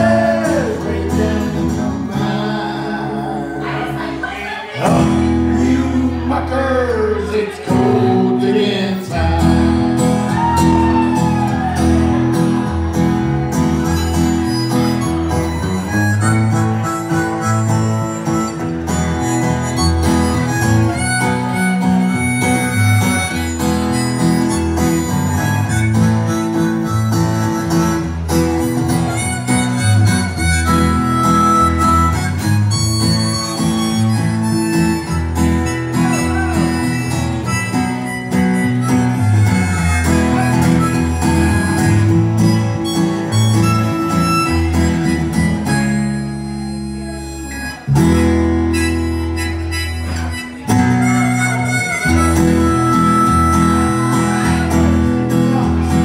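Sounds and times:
harmonica lead: 0.0 - 4.1, 8.1 - 56.0
electric guitar: 0.0 - 56.0
strummed acoustic guitar: 0.0 - 56.0.

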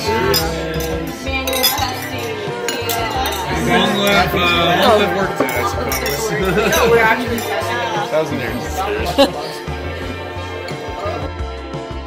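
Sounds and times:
wine glasses clinking: 0.0 - 9.6
background music: 0.0 - 12.0.

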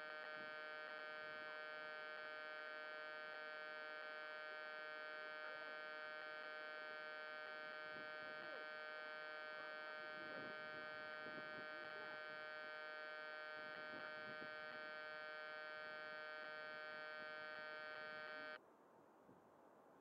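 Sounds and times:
electrical hum and whine: 0.0 - 18.6.

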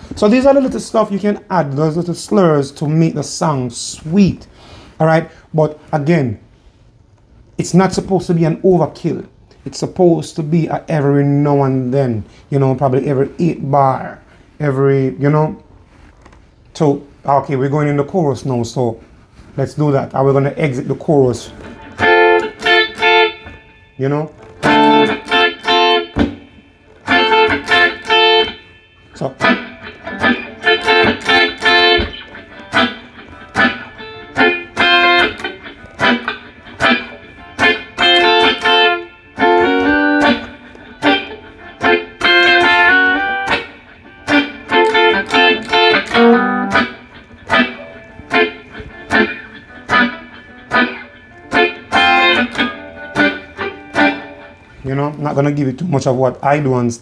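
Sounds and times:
electric guitar reggae chord stabs: 20.2 - 56.7.

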